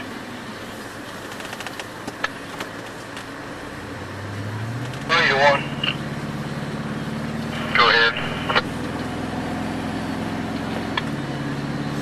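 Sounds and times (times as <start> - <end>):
vehicle engine from inside cab: 0.0 - 12.0.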